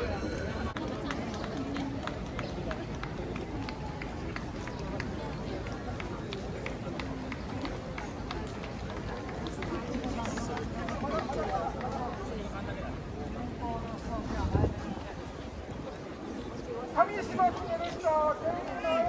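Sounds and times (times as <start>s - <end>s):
crowd chatter: 0.0s - 19.0s.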